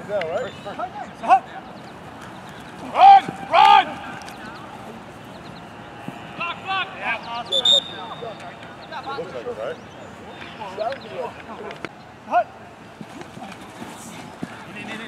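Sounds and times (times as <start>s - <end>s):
players shouting: 0.3s - 9.6s
referee's whistle blast: 7.5s - 8.4s.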